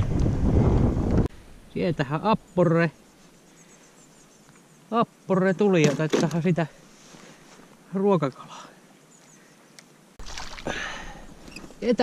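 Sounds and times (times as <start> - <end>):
water splashing: 10.2 - 11.4.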